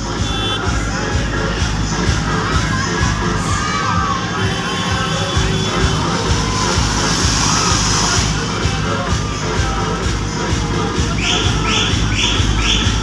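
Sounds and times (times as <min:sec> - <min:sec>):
crowd shouting and cheering: 0:00.0 - 0:13.0
loud dance music with heavy bass: 0:00.0 - 0:13.0
high hiss: 0:05.3 - 0:13.0.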